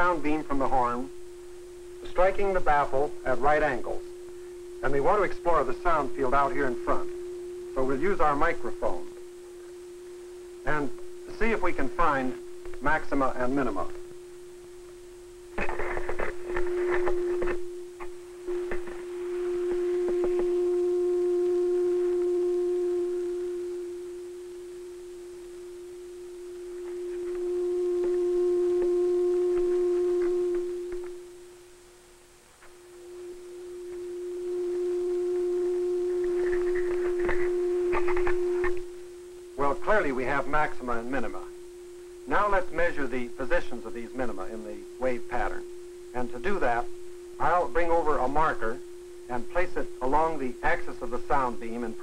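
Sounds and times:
low oscillator tone from loudspeaker: 0.0 - 52.0
microphone handling clicks: 36.1 - 38.9.

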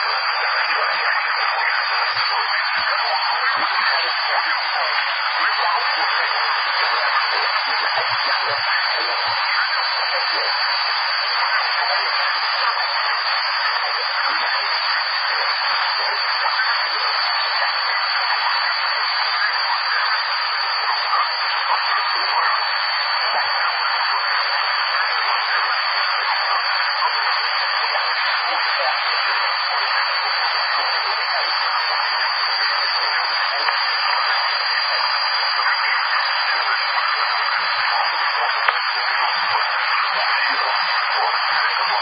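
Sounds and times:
radio static hiss: 0.0 - 42.0.

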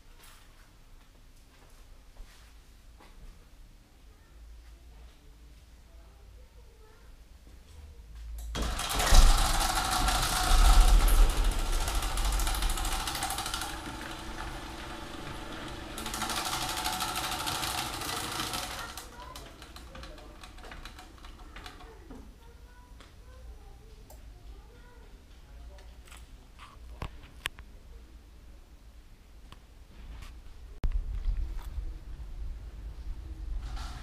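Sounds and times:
garage door opener running: 8.5 - 22.1.

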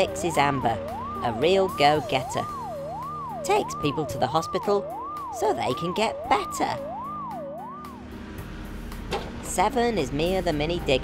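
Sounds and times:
cartoon ambulance siren wailing: 0.0 - 8.1
background music: 0.0 - 11.0.

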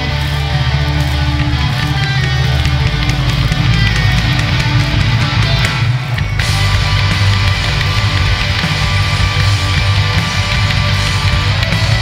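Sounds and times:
drum kit: 0.0 - 12.0
heavy electric guitar: 0.0 - 12.0
rock band playing live: 0.0 - 12.0.

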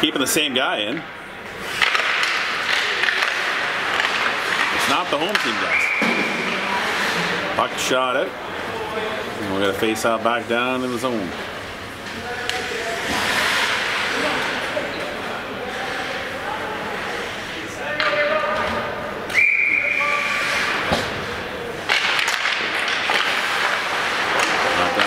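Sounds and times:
arena crowd chatter: 0.0 - 25.0
referee whistle: 5.7 - 6.3, 19.3 - 20.5.

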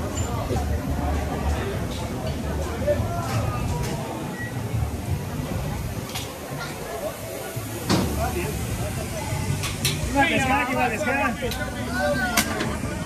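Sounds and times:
indistinct crowd voices: 0.0 - 13.0.

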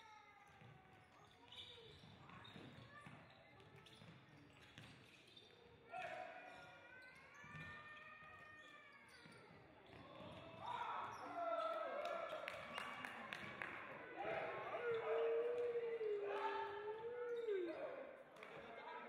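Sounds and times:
players shouting: 14.1 - 18.0.

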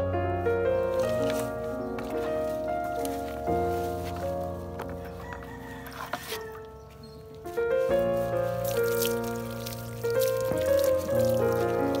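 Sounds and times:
sustained background music chords: 0.0 - 12.0.

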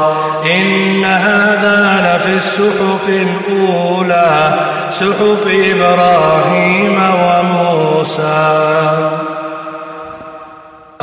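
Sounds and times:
man chanting recitation: 0.0 - 9.5.

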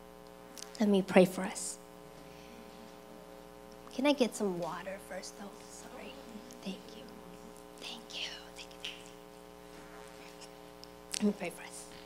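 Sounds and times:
steady low hum: 0.0 - 12.0
faint whispered speech: 5.4 - 9.3.

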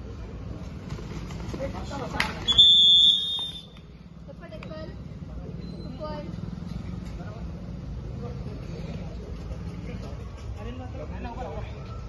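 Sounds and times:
people talking and calling: 0.0 - 12.0.

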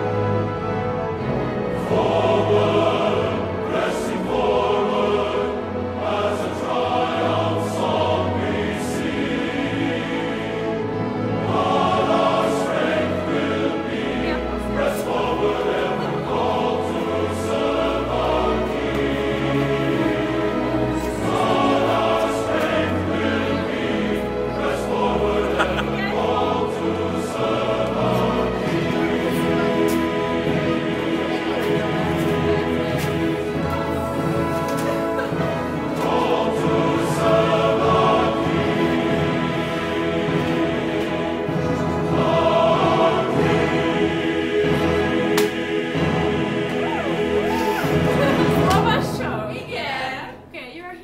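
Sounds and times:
choir singing: 0.0 - 50.5
instrumental accompaniment: 0.0 - 51.0.

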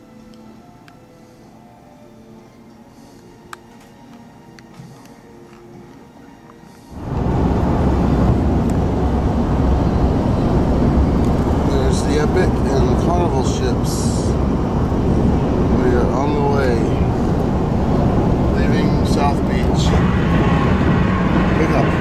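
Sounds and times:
road and engine noise in car: 6.9 - 22.0
indistinct voices: 7.0 - 22.0.

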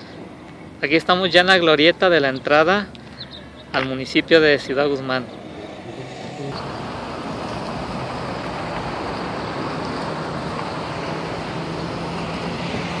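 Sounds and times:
low engine hum: 0.0 - 13.0
road traffic noise: 0.0 - 13.0.

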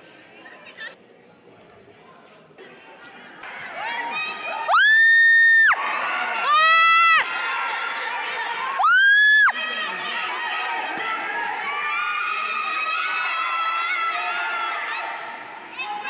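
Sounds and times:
spectators cheering and shouting: 3.4 - 16.0.

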